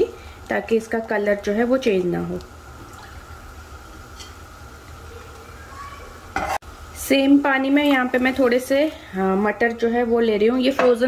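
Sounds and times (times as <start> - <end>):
water boiling and bubbling: 0.0 - 10.5.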